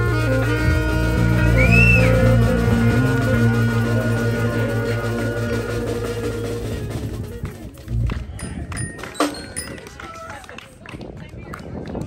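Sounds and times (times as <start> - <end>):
indistinct voices talking: 0.8 - 11.5.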